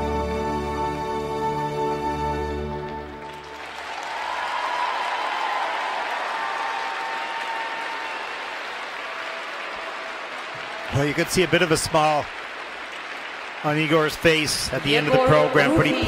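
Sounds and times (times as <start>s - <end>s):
skating program music: 0.0s - 3.5s
audience applause: 2.8s - 16.0s.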